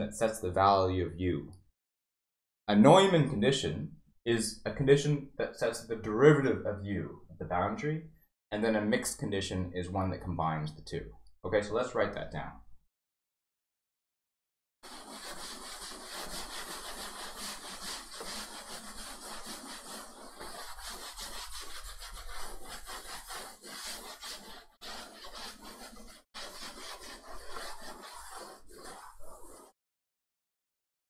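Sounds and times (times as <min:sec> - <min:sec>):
eraser scrubbing chalkboard: 0:14.8 - 0:29.8.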